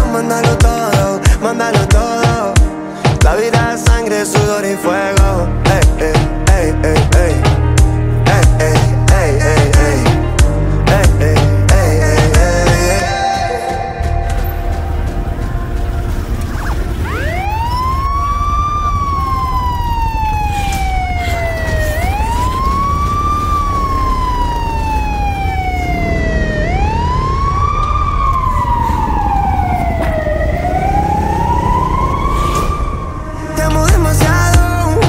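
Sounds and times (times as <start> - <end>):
song: 0.0 - 18.1, 24.1 - 35.0
steady low bass: 5.2 - 17.5, 33.5 - 35.0
siren-style sweeping tone: 12.5 - 33.9.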